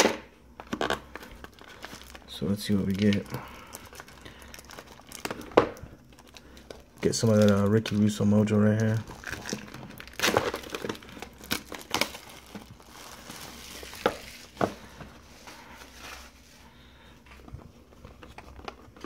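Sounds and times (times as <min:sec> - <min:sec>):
plastic wrapping crinkling: 0:00.6 - 0:19.0.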